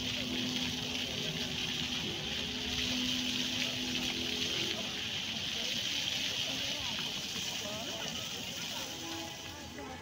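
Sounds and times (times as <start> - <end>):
fountain jets splashing on paving: 0.0 - 10.0.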